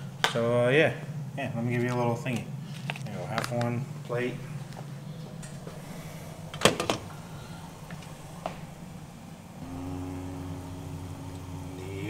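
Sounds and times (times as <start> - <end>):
low background hum: 0.0 - 12.0
mechanical drone buzzing: 4.3 - 12.0.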